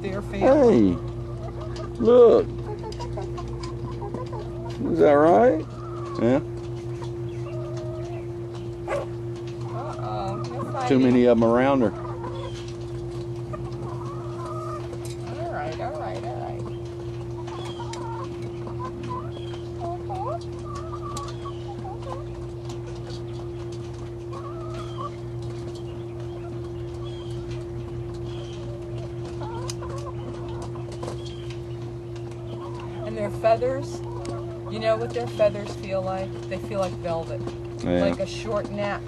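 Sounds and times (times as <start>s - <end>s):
hens clucking: 0.0s - 39.0s.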